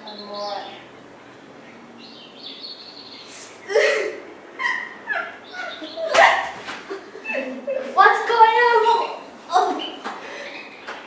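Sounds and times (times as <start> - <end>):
girl pretend crying: 3.6 - 6.4.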